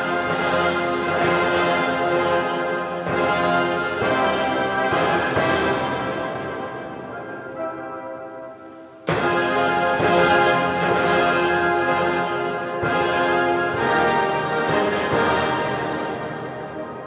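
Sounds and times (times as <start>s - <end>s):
concert band brass chords: 0.0s - 17.0s.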